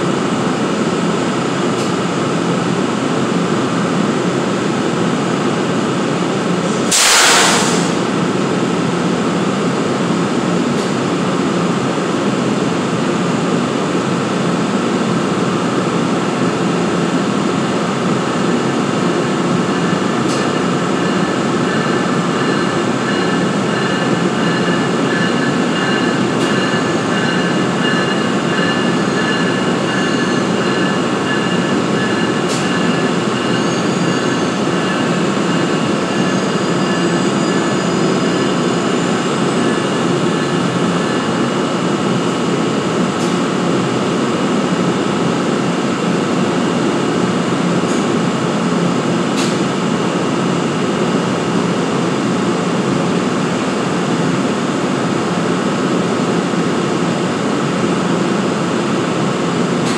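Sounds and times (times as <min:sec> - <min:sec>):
compressed air hiss: 0:06.9 - 0:08.0.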